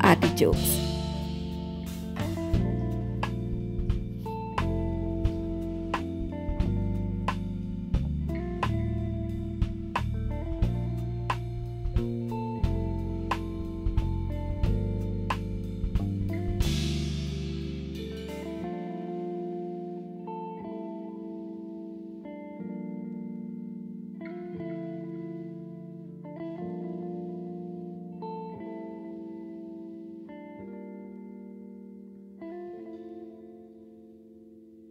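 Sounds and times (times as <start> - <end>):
instrumental background music: 0.0 - 34.6.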